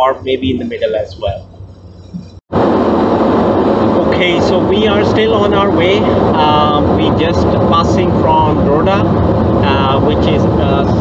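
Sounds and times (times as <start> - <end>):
car road noise from inside cabin: 0.0 - 11.0.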